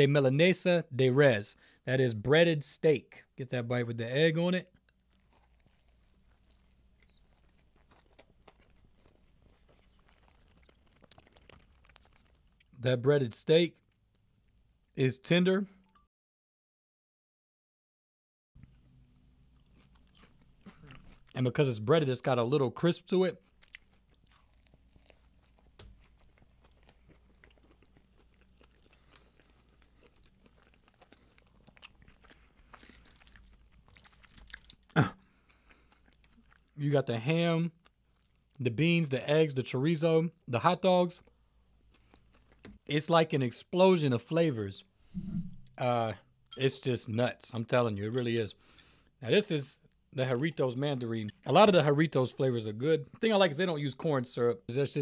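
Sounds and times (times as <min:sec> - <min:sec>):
chewing with small crunches: 0:04.6 - 0:12.8, 0:13.8 - 0:15.0, 0:18.6 - 0:37.1, 0:37.7 - 0:38.6, 0:41.2 - 0:42.9, 0:47.7 - 0:53.4.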